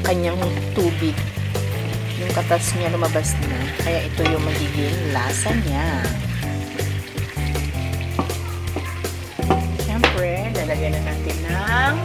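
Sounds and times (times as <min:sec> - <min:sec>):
background music with bass line: 0:00.0 - 0:12.0
chicken sizzling in a pan: 0:00.0 - 0:12.0
stirring scrapes and clicks: 0:01.8 - 0:05.5.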